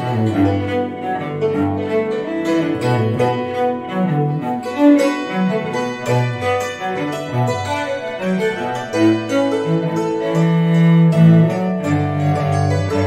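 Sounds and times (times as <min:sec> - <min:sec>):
bowed string instrument: 0:00.0 - 0:13.0
hammered dulcimer: 0:00.0 - 0:13.0.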